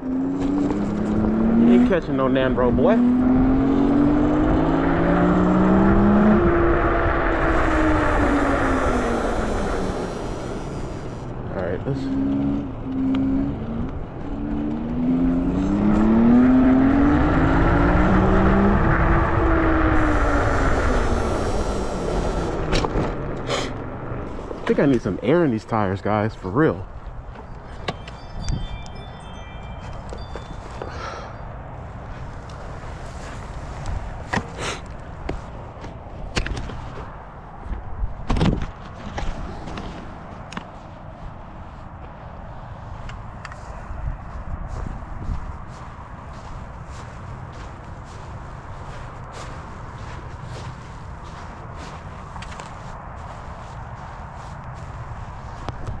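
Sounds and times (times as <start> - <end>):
low outdoor background noise: 0.0 - 56.0
footsteps on grass: 26.8 - 31.2, 31.8 - 37.1, 39.3 - 56.0
short high chiming tones: 27.4 - 31.5
handheld camera knocks and rustles: 37.7 - 40.8.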